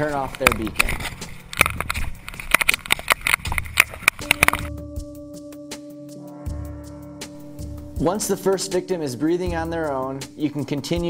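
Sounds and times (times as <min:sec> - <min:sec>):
music with held notes: 0:03.2 - 0:11.0.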